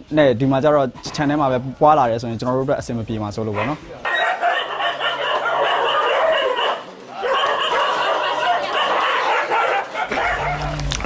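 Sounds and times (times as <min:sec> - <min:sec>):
pack of dogs barking and yelping: 0:03.6 - 0:11.0.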